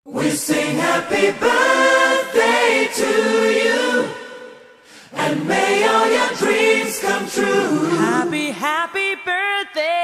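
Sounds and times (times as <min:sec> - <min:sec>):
choir singing birthday song: 0:00.1 - 0:08.8.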